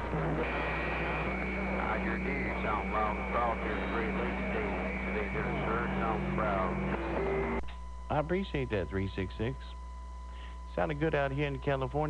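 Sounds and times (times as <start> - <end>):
faint voice through radio static: 0.0 - 9.8
steady radio whistle: 0.0 - 11.9
low hum: 0.0 - 12.0.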